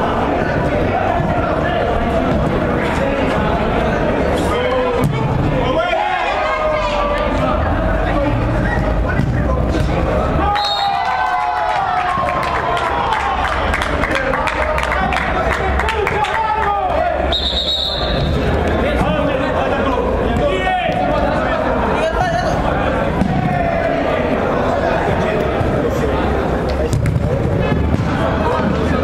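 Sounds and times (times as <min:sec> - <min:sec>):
people shouting in indoor hall: 0:00.0 - 0:26.6
referee's whistle: 0:10.5 - 0:11.0, 0:17.3 - 0:18.4
ball being kicked: 0:26.9 - 0:28.8.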